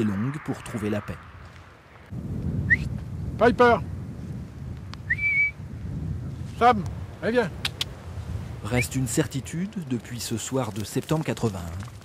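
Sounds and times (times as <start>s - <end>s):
wind rumble on microphone: 0.0s - 12.0s
man whistling: 2.6s - 2.9s, 5.1s - 5.6s.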